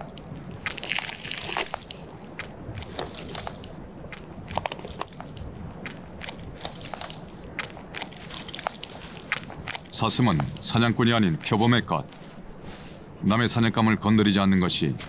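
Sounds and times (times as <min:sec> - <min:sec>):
leopard crunching and tearing carcass: 0:00.0 - 0:12.9.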